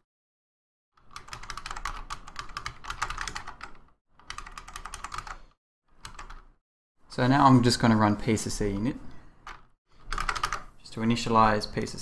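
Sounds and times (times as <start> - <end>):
fast typing on keyboard: 1.0 - 6.5, 9.5 - 10.7.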